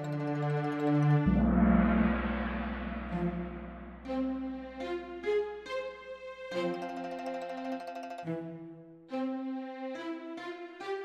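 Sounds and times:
gong ringing: 0:01.2 - 0:04.8
soft pitched instrument note: 0:01.2 - 0:05.1
deep hum: 0:01.2 - 0:05.2.

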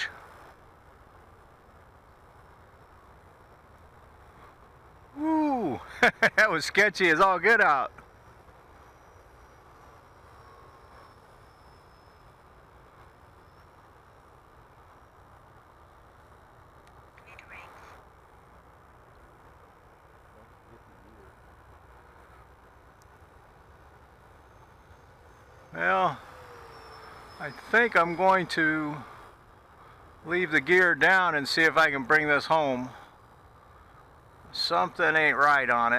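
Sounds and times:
distant model jet whine: 0:00.0 - 0:35.9
low steady hiss: 0:00.0 - 0:35.9.

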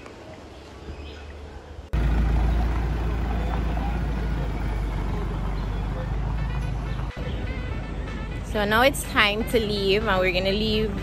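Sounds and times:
minibus engine idling: 0:01.9 - 0:08.5.

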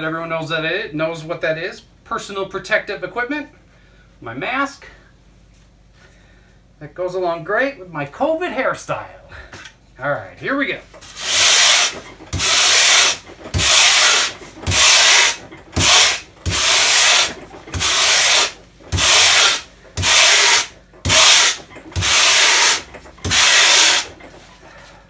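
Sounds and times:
wire brush scraping foam: 0:11.0 - 0:24.2.

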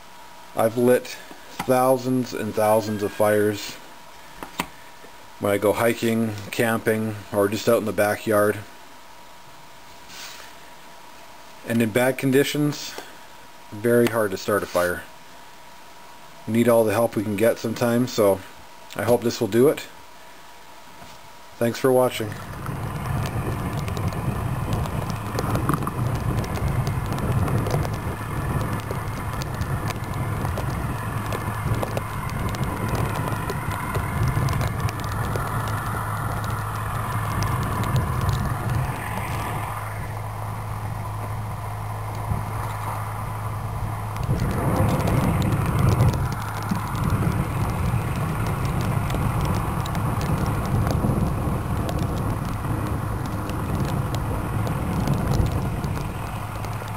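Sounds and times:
steady low hum: 0:00.0 - 0:56.9.

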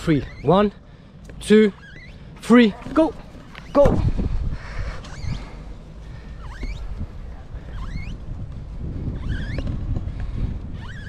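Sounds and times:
wind rumble on microphone: 0:02.8 - 0:11.0.

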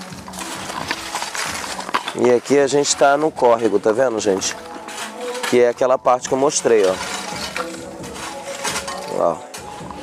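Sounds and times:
background music held notes: 0:00.0 - 0:10.0.

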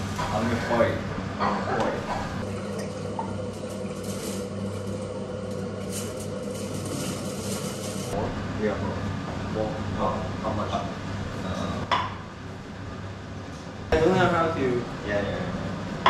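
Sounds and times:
steady low hum: 0:00.0 - 0:16.0
water running into a pot: 0:01.8 - 0:08.2.

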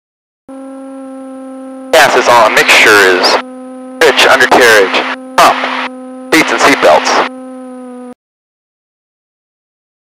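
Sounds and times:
steady hum: 0:00.5 - 0:08.2
man speaking: 0:02.0 - 0:03.4, 0:04.0 - 0:07.3.

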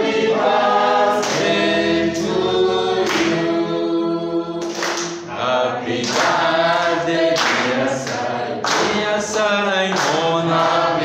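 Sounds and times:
congregation singing unaccompanied: 0:00.0 - 0:11.0.

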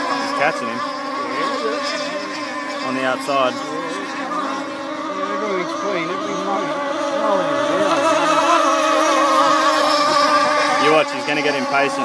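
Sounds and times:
model boat engines buzzing: 0:00.0 - 0:12.0.

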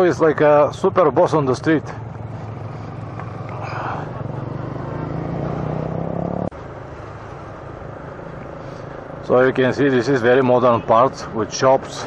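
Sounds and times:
road noise: 0:00.0 - 0:12.0
motorcycle engine running: 0:00.7 - 0:09.4.

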